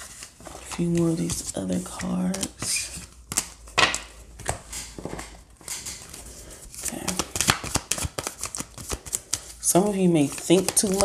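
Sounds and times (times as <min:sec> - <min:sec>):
cards being shuffled: 0:00.0 - 0:11.0.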